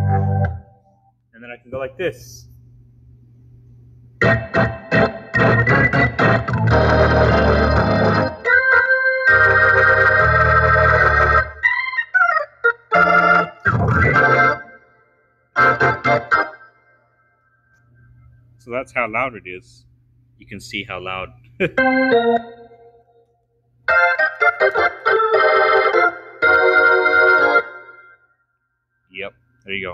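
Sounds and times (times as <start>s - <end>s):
organ chords with heavy bass: 0.0s - 2.0s, 4.1s - 15.0s, 15.6s - 16.9s, 20.9s - 23.1s, 23.8s - 28.2s
sliding wavering organ run: 4.2s - 14.8s, 15.6s - 16.8s, 21.6s - 28.2s.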